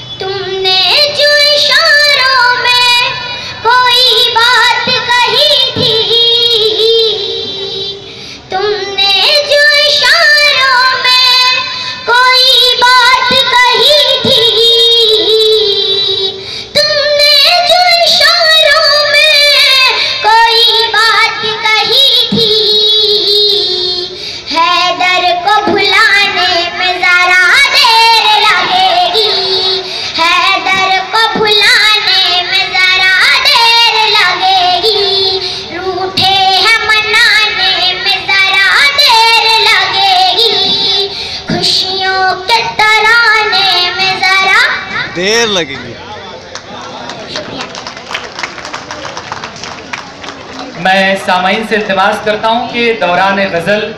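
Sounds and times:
girl singing into a microphone: 0:00.0 - 0:45.2.

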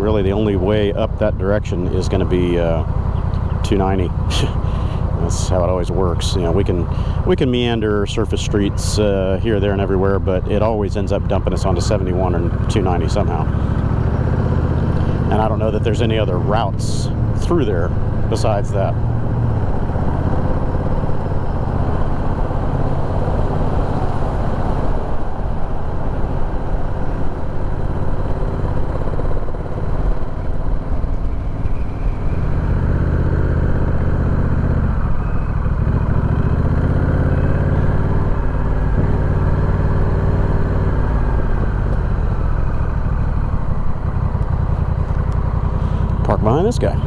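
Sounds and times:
motorcycle engine at low speed: 0:00.0 - 0:47.0.

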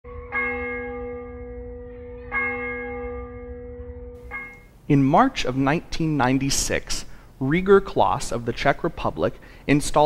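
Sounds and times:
church bell striking: 0:00.1 - 0:04.8.

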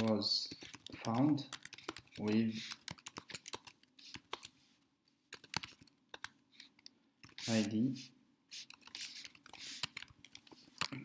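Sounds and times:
keyboard typing: 0:00.0 - 0:04.6, 0:05.3 - 0:07.8, 0:08.5 - 0:11.0.

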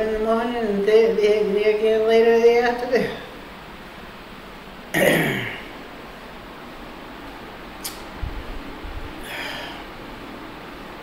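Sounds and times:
woman clearing her throat: 0:05.0 - 0:05.8.

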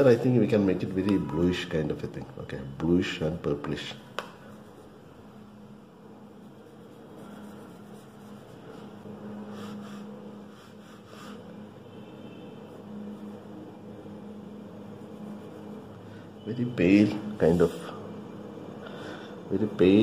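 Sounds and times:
low hum and hiss: 0:00.0 - 0:20.0
paintbrush scrubbing in palette: 0:06.4 - 0:11.5.

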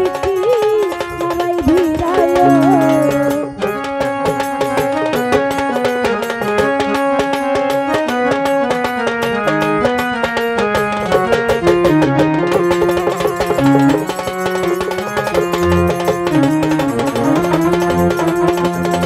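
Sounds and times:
electronic keyboard melody: 0:00.0 - 0:19.0
hand drum rhythm: 0:00.0 - 0:19.0.

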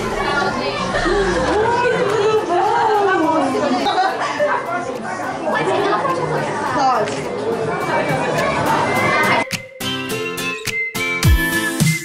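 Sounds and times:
people chattering: 0:00.0 - 0:10.7.

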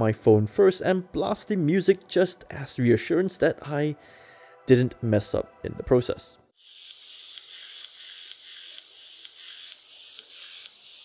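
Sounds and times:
thin hissy music with a beat: 0:05.3 - 0:11.0.

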